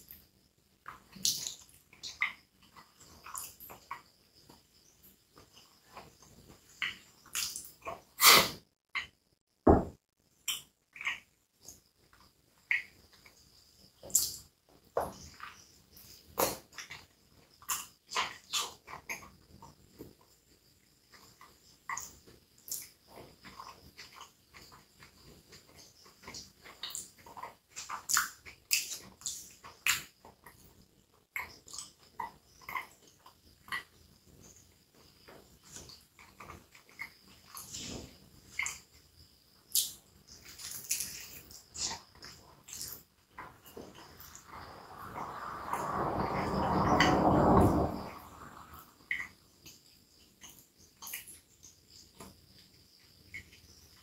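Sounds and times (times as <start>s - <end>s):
close chewing with mouth clicks: 0.0s - 9.1s, 15.2s - 44.6s, 49.1s - 54.0s.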